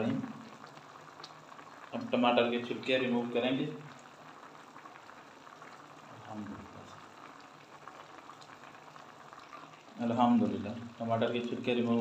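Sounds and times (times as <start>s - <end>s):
pot simmering with faint bubbling: 0.0s - 12.0s.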